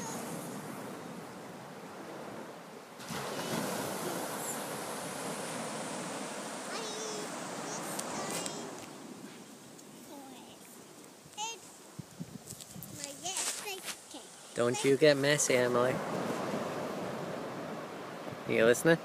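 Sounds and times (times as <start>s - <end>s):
surf washing onto beach: 0.0s - 19.0s.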